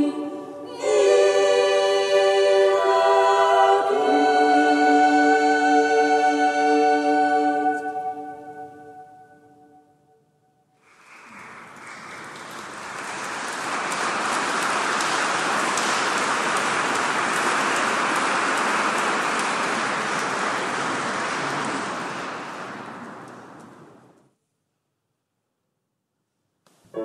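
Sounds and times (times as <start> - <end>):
choir singing chord: 0.0 - 9.7
audience applauding: 10.8 - 24.1.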